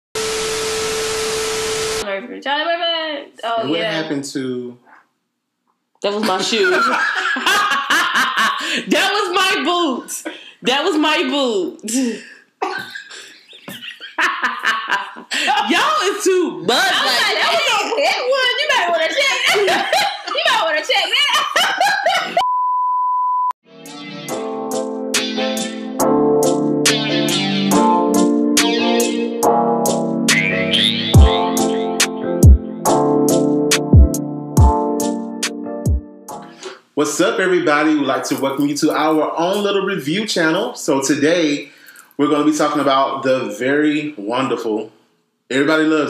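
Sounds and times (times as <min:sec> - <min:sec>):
people laughing: 0:06.2 - 0:09.0, 0:12.6 - 0:22.4
guitar music: 0:23.7 - 0:36.6.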